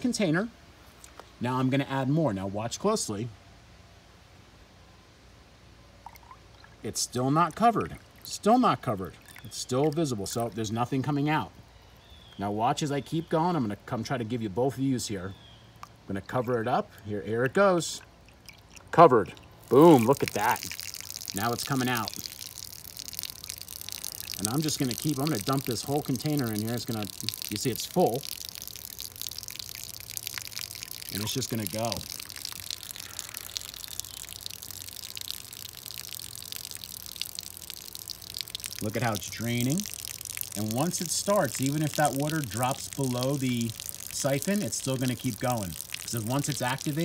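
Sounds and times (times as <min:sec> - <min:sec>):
water pouring into plastic cup: 0:06.0 - 0:10.9, 0:15.8 - 0:47.0.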